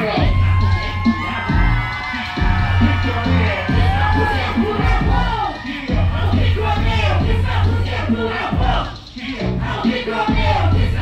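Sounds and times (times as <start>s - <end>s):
heavy bass: 0.0s - 11.0s
live hip hop music: 0.0s - 11.0s
voices over music: 0.0s - 11.0s.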